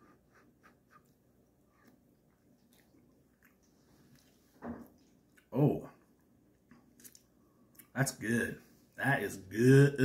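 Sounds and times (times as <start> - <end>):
person chewing food: 0.0 - 8.0
wet mouth clicks: 7.0 - 7.9.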